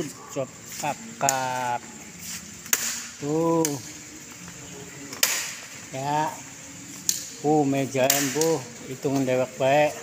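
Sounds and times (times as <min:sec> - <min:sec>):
faint background noise: 0:00.0 - 0:10.0.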